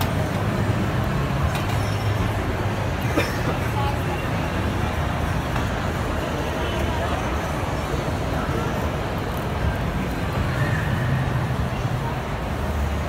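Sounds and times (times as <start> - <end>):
indistinct crowd chatter: 0.0 - 13.0.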